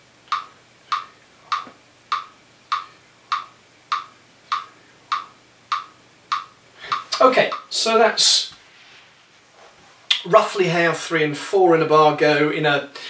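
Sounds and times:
metronome ticking: 0.3 - 7.7.

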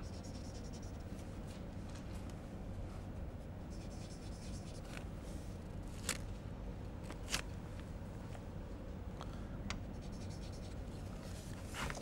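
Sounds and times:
chalk scratching on chalkboard: 0.0 - 1.1, 3.7 - 5.0, 10.0 - 10.8
low room hum: 0.0 - 12.0.

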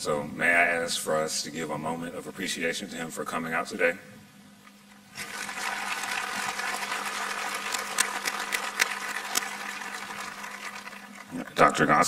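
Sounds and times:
audience applauding: 5.2 - 11.3.

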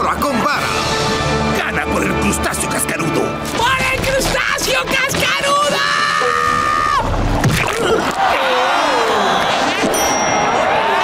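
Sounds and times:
cartoon stadium crowd noise: 8.0 - 11.0.

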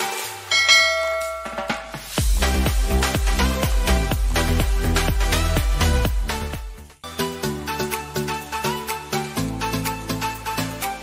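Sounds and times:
bell-like chime ringing: 0.4 - 2.2.

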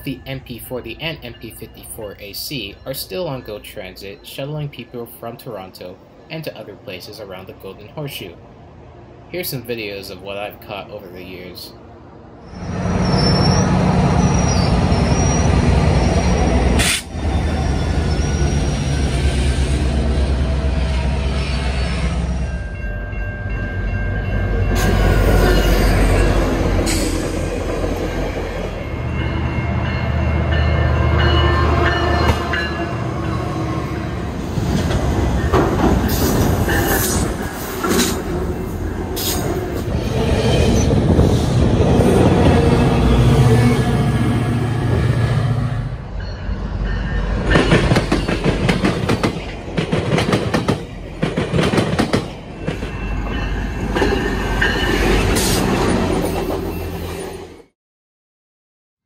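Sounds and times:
diesel locomotive drone: 0.0 - 57.7
train wheels clacking over rails: 34.7 - 38.3, 47.4 - 53.1.

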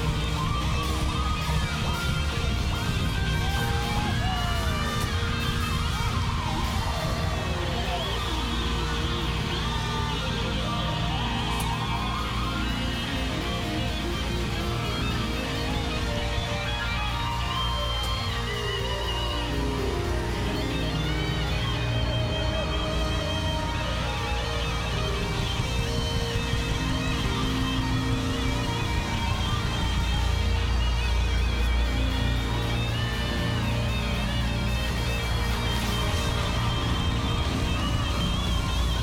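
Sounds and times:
electric guitar lead lines: 0.0 - 39.0
steady low bass: 0.0 - 39.0.

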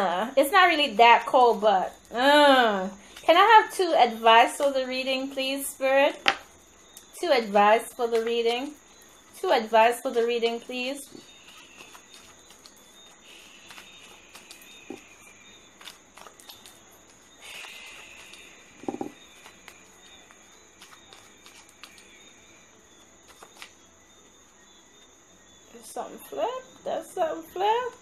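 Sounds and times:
high-pitched hiss: 2.1 - 27.8
playing cards shuffled: 15.8 - 19.9, 23.2 - 23.8.

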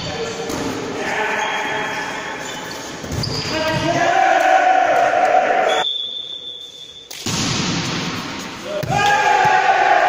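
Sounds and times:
referee's whistle: 5.7 - 7.1.

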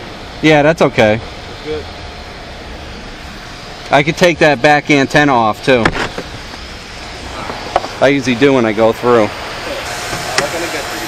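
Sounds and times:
outdoor background noise: 0.0 - 11.0
vehicle engine idling: 0.0 - 11.0.

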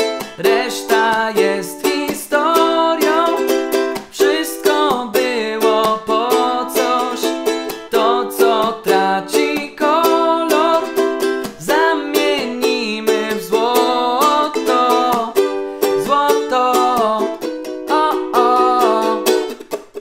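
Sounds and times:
man singing: 0.0 - 19.6
ukulele strummed: 0.0 - 20.0.

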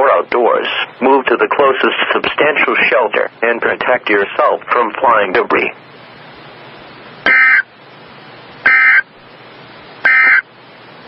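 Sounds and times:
radio static hiss: 0.0 - 11.0
short buzzing data bursts: 7.2 - 7.7, 8.6 - 9.1, 10.0 - 10.4.

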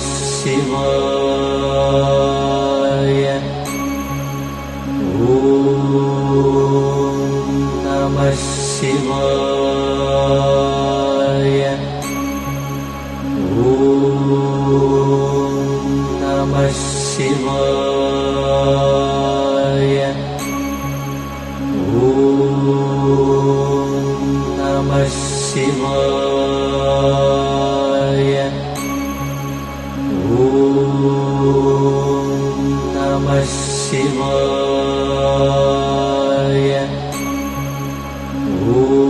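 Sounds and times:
chanted mantra: 0.0 - 4.1, 5.0 - 12.4, 13.4 - 20.8, 21.8 - 29.2, 30.1 - 37.7, 38.4 - 39.0
steady drone: 0.0 - 39.0.

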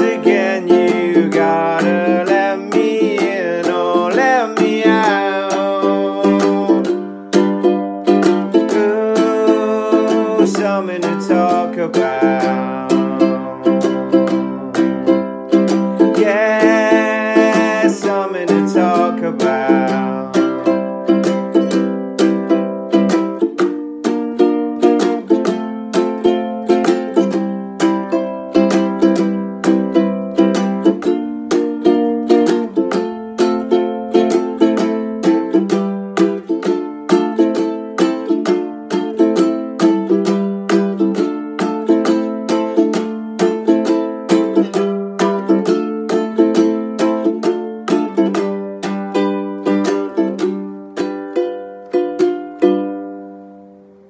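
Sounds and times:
ukulele strumming: 0.0 - 54.0.

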